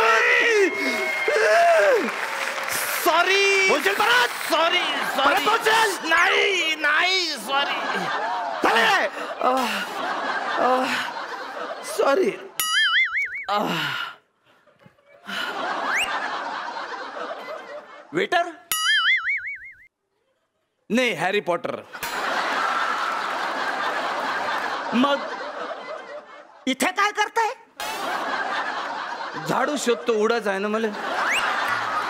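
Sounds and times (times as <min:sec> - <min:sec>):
studio audience applauding: 0:00.0 - 0:09.2, 0:22.4 - 0:25.6, 0:31.1 - 0:32.0
audience laughter: 0:03.6 - 0:12.6, 0:14.5 - 0:18.5, 0:21.9 - 0:26.8, 0:27.8 - 0:32.0
wavering comedy sound effect: 0:12.6 - 0:13.6, 0:18.7 - 0:19.9
rising whistle: 0:15.9 - 0:16.2.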